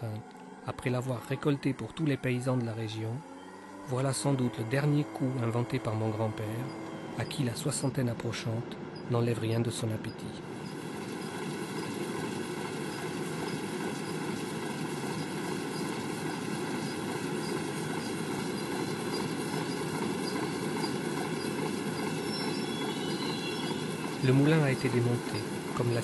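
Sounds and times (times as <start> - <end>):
faint whine: 0.0 - 26.0
machinery motors droning: 0.0 - 26.0.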